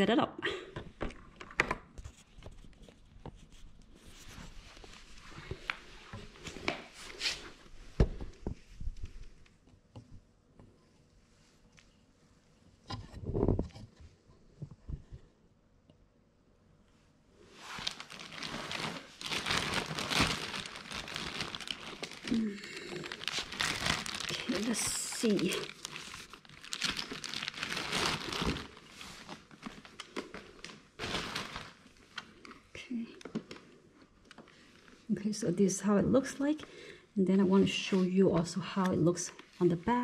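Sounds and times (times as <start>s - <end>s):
plastic film crinkling: 17.6s - 32.6s.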